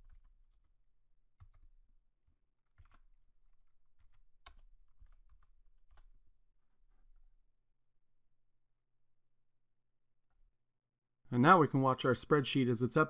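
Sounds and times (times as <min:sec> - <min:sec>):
faint keyboard typing: 0:00.0 - 0:07.3.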